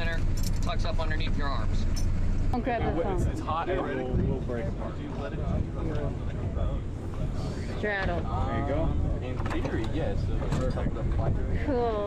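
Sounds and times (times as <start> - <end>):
people talking: 0.0 - 1.8, 2.6 - 12.0
steady low rumble: 0.0 - 12.0.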